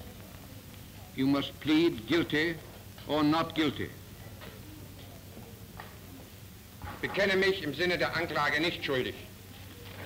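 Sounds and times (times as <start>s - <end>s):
recording hiss and hum: 0.0s - 10.0s.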